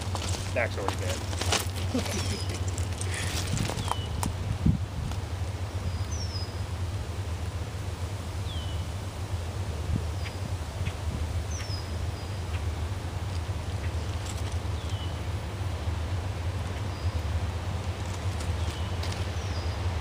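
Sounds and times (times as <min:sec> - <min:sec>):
distant locomotives rumbling: 0:00.0 - 0:20.0
bird chirping: 0:01.8 - 0:04.2, 0:05.6 - 0:06.7, 0:08.4 - 0:09.0, 0:10.0 - 0:15.4, 0:16.6 - 0:17.4.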